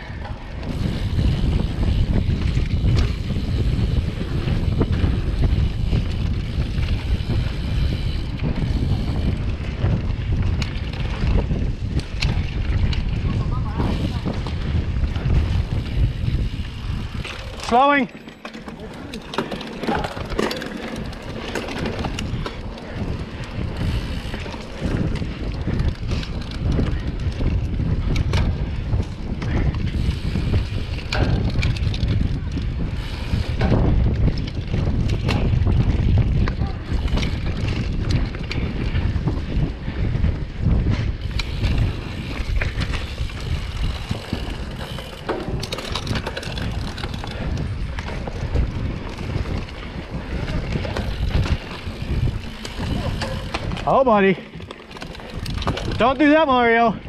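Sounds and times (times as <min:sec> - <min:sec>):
bike rattles and knocks: 0:00.0 - 0:57.0
wind buffeting microphone: 0:00.0 - 0:57.0.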